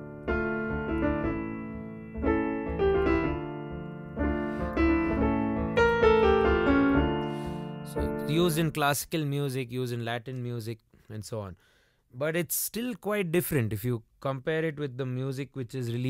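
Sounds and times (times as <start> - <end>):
piano chords and melody: 0.0 - 8.8.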